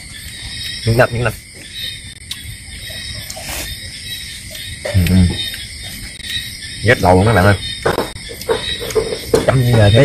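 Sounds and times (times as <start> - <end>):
night insects singing: 0.0 - 10.0.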